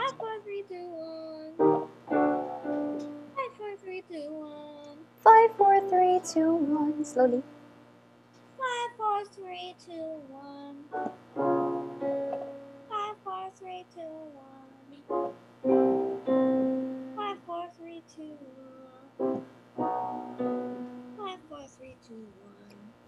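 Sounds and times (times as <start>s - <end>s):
girl singing descending scale: 0.0s - 1.6s, 3.3s - 7.4s, 17.1s - 19.2s
piano chord: 1.6s - 3.4s, 10.9s - 12.9s, 15.1s - 17.3s, 19.2s - 21.3s.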